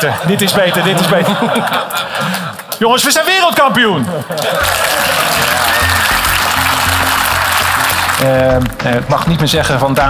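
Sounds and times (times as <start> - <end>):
audience applause: 0.0 - 9.4
background music with bass line: 4.6 - 10.0.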